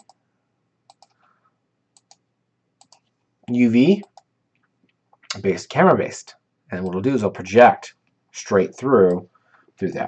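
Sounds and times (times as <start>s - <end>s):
computer mouse clicks: 0.0s - 0.2s, 0.9s - 1.3s, 2.0s - 2.2s, 2.8s - 3.1s, 4.0s - 5.0s.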